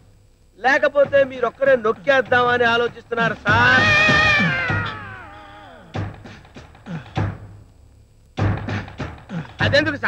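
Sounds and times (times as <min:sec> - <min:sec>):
man wailing: 0:03.5 - 0:06.0.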